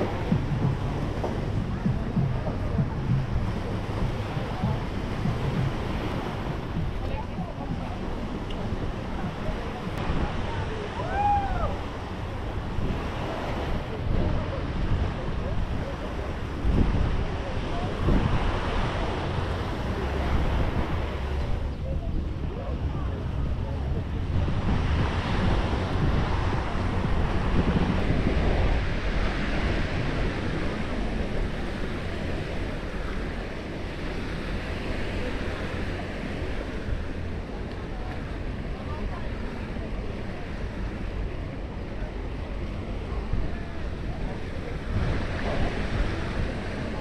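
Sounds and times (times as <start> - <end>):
crowd chatter: 0.0 - 47.0
surf washing on shore: 0.0 - 47.0
wind buffeting microphone: 0.0 - 47.0.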